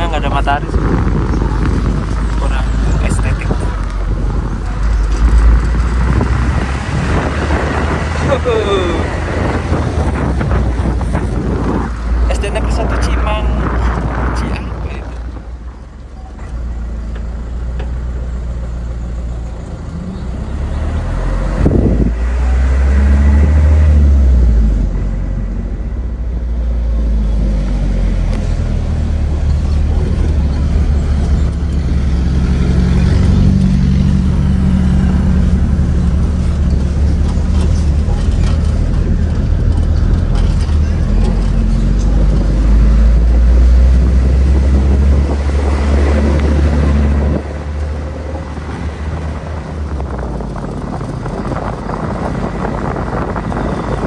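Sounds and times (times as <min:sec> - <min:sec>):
minibus engine and road rumble: 0:00.0 - 0:54.0.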